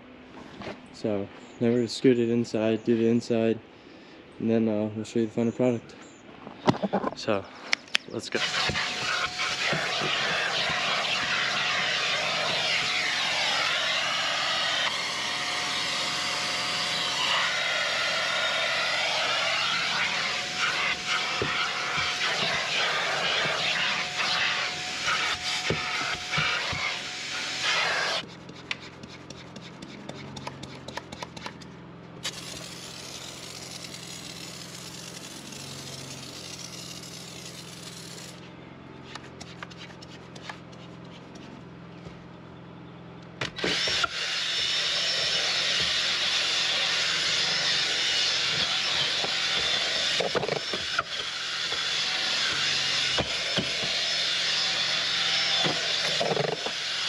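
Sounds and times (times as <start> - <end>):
low hum: 5.4 - 43.4
vacuum cleaner sucking: 8.3 - 28.2, 32.2 - 38.4, 43.6 - 57.0.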